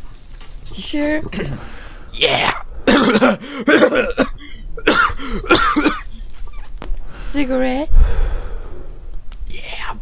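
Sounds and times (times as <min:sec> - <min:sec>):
man coughing: 0:02.2 - 0:06.2.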